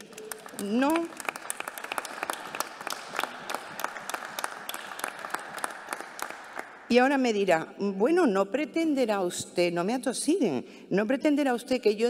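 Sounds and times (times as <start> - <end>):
audience applause: 0.0 - 6.9.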